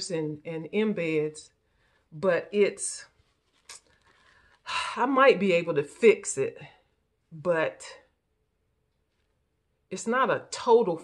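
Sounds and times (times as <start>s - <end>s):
woman speaking: 0.0s - 3.8s, 4.6s - 8.2s, 9.9s - 11.0s
woman breathing in: 3.9s - 4.7s.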